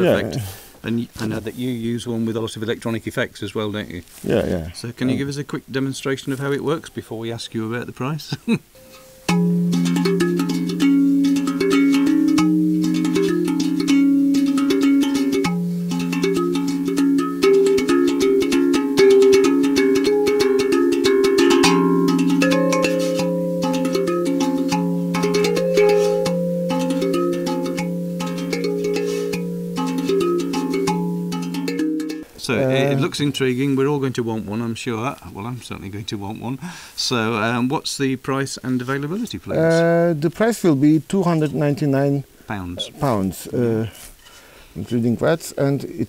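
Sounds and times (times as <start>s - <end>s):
tongue drum notes: 8.8s - 33.5s.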